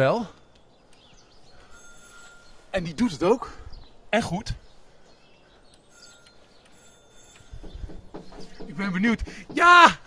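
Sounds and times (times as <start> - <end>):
low knocks: 7.5 - 10.0.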